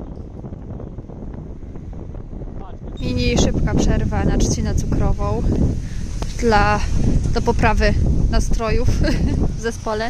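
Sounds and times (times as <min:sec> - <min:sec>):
road and engine rumble: 0:00.0 - 0:10.0
wind rushing over microphone: 0:00.0 - 0:10.0.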